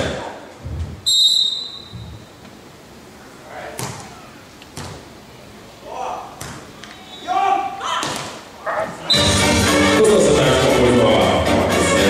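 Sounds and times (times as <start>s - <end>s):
volleyball being struck: 3.8s - 4.1s, 6.4s - 6.7s
players shouting calls: 5.7s - 9.6s.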